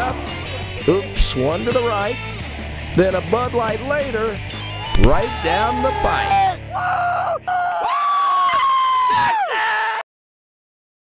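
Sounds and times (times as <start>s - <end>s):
man yelling high-pitched: 4.8s - 8.5s.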